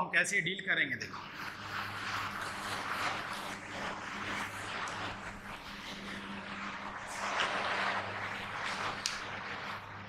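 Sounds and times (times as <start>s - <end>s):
steady rushing noise: 0.3s - 10.0s
low hum: 1.0s - 10.0s.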